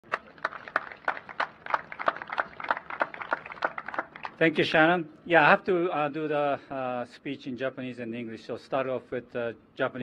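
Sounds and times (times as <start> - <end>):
people clapping: 0.0 - 4.7.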